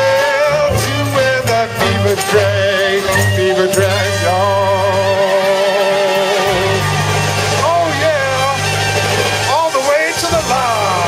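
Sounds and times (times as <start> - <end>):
band holding low note: 0.0 - 11.0.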